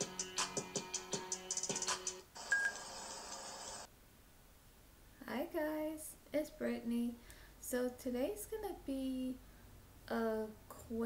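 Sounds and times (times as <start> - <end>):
steady hiss: 2.4 - 5.4.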